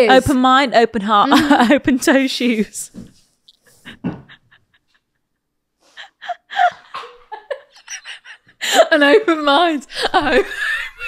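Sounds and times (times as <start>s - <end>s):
person's wheezing laughter: 5.8s - 8.8s.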